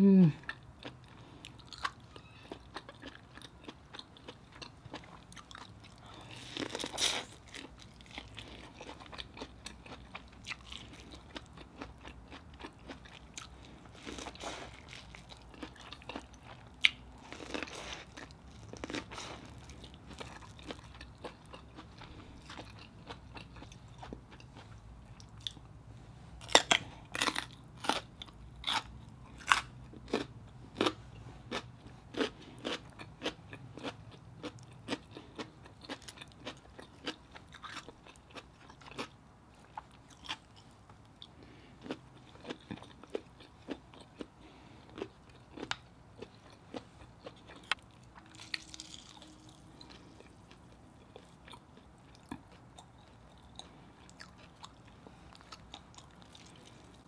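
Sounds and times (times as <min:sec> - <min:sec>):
crunching and chewing radish: 0:00.4 - 0:57.0.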